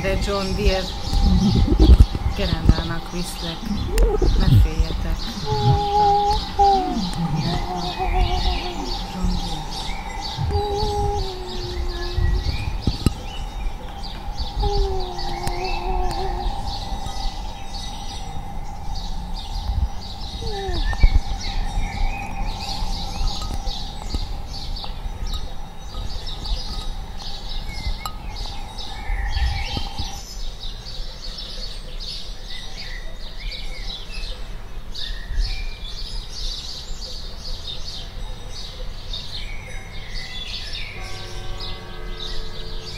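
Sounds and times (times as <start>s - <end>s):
small birds chirping: 0.0s - 42.9s
steady held tone: 3.6s - 30.1s.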